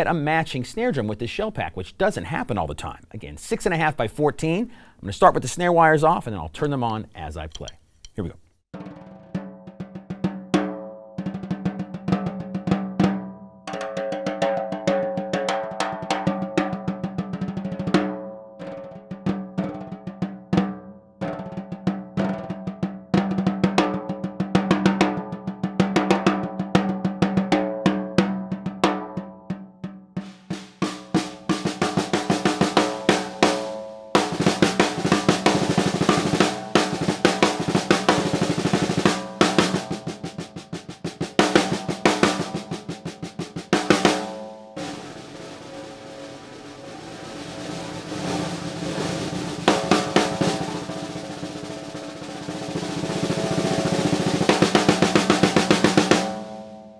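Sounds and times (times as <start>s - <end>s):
snare drum played with sticks: 7.5s - 56.9s
rattling snare buzz: 30.2s - 56.7s.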